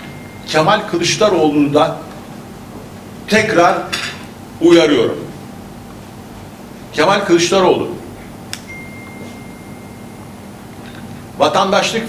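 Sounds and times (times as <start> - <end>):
steady high-pitched tone: 0.0 - 1.8, 8.7 - 11.0
low room hum: 0.0 - 12.0.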